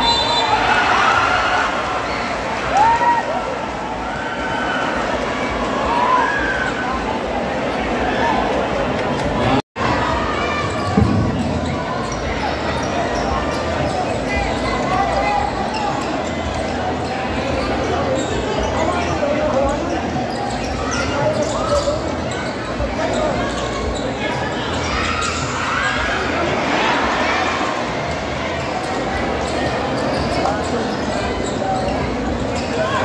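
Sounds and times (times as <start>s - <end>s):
crowd voices and shouts: 0.0s - 33.0s.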